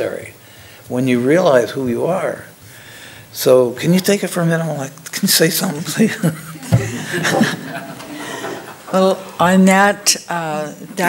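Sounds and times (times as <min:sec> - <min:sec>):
man and woman laughing: 0:06.0 - 0:08.8.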